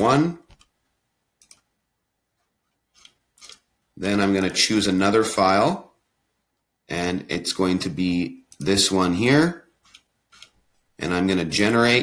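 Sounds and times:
computer mouse clicks: 0:00.4 - 0:00.8, 0:01.4 - 0:01.7, 0:02.7 - 0:03.7, 0:09.8 - 0:10.6.

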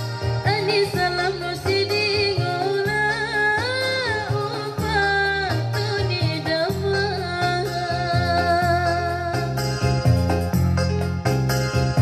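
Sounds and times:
rhythmic backing music: 0:00.0 - 0:12.0
woman singing: 0:00.3 - 0:09.6.

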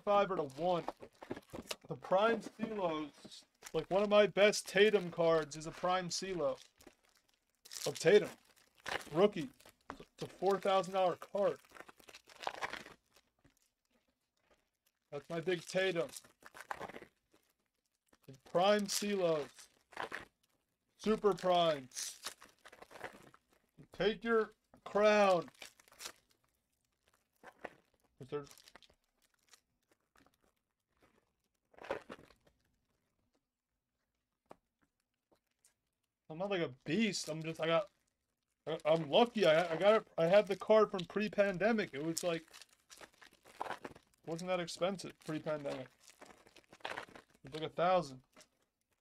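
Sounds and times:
wrappers crinkling: 0:00.0 - 0:23.9, 0:24.5 - 0:33.4, 0:36.7 - 0:49.0.

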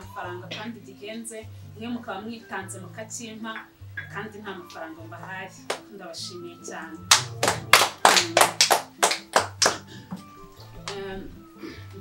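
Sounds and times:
background music low sustained tones: 0:00.0 - 0:12.0
hand claps: 0:05.6 - 0:05.9, 0:07.1 - 0:11.1.

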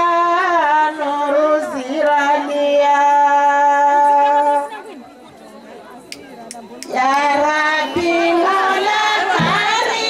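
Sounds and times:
women chattering: 0:01.1 - 0:10.0.

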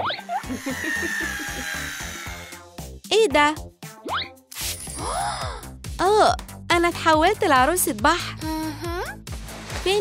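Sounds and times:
background music: 0:00.0 - 0:10.0
cordless drill whine: 0:00.4 - 0:02.6.

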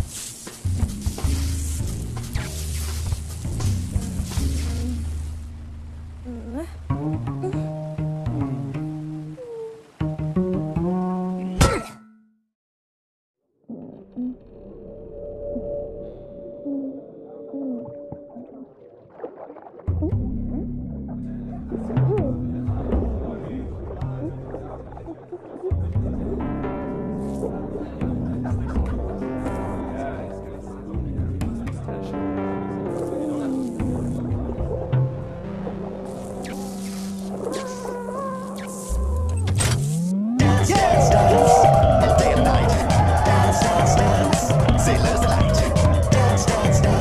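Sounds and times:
film soundtrack music: 0:00.0 - 0:11.8, 0:14.1 - 0:47.0
loud dance music: 0:40.4 - 0:47.0.

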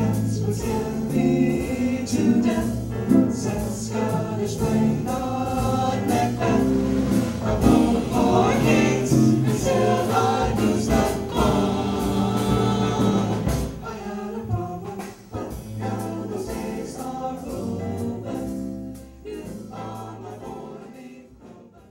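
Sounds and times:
band with steady beat: 0:00.0 - 0:20.1
vocal group singing pop song: 0:00.0 - 0:21.9.

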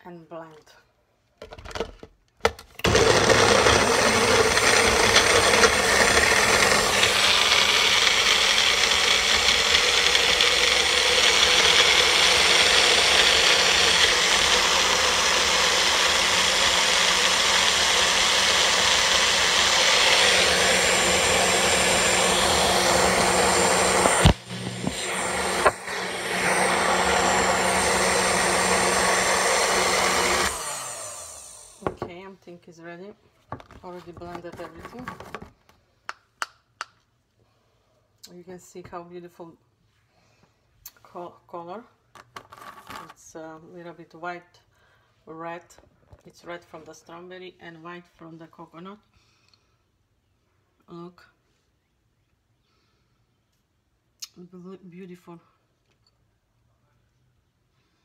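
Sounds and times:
blender click: 0:02.8 - 0:32.0
blender running: 0:02.8 - 0:32.1.

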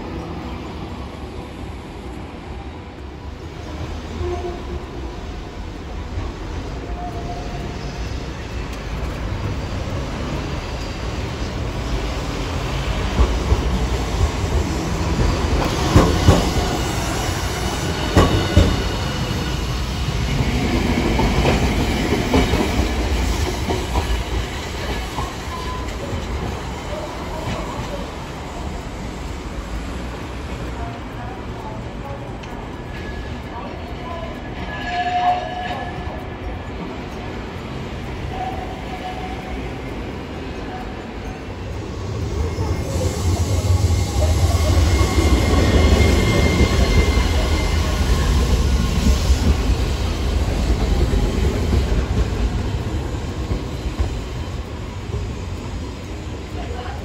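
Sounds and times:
street background: 0:00.0 - 0:57.0
tram running past: 0:00.0 - 0:57.0.

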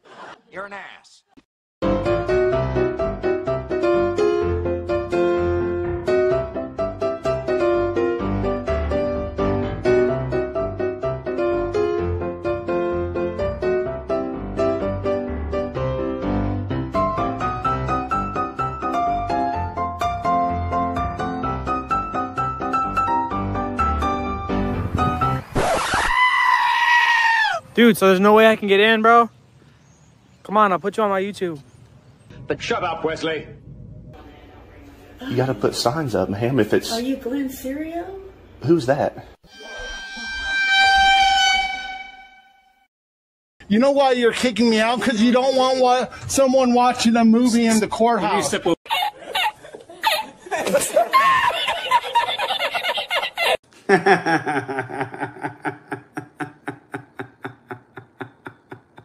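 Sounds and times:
piano-like background music: 0:01.8 - 0:25.4
burst of noise: 0:25.4 - 0:26.2
high-pitched scream: 0:25.6 - 0:27.7, 0:39.5 - 0:42.8
man laughing hard: 0:48.9 - 0:59.0.

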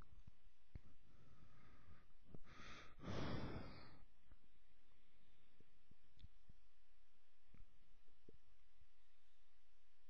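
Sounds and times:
person breathing close to microphone: 0:01.0 - 0:04.1.

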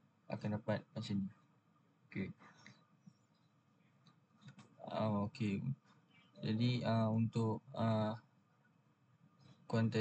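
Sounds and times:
man saying hesitant ah: 0:00.3 - 0:01.3, 0:04.8 - 0:05.8, 0:06.4 - 0:08.2.

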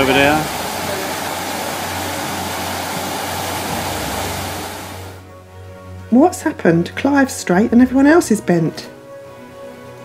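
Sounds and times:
fountain water splashing into basin: 0:00.0 - 0:05.2.

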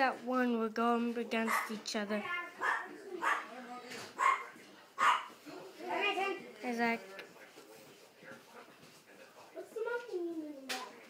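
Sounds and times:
dog barking: 0:01.5 - 0:01.8, 0:02.6 - 0:03.5, 0:04.2 - 0:05.4.

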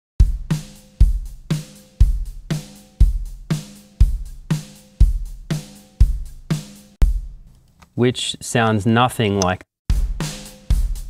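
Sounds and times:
kick drum: 0:00.2 - 0:01.4, 0:07.0 - 0:07.4, 0:09.9 - 0:11.0
drum hit: 0:00.2 - 0:07.5, 0:09.9 - 0:11.0.

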